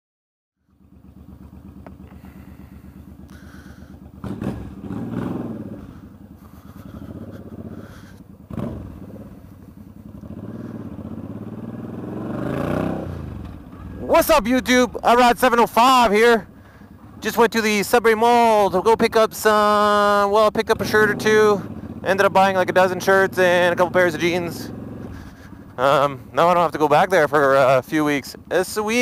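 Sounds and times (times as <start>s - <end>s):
motorcycle engine idling and revving: 0.6s - 29.0s.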